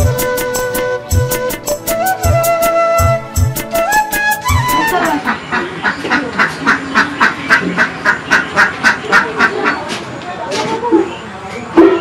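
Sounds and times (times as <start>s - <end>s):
background music: 0.0s - 5.3s
duck quacking: 4.7s - 9.9s.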